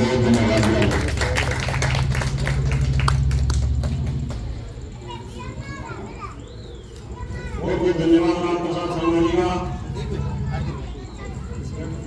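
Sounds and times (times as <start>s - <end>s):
crowd murmur: 0.0s - 12.0s
children calling: 4.3s - 12.0s.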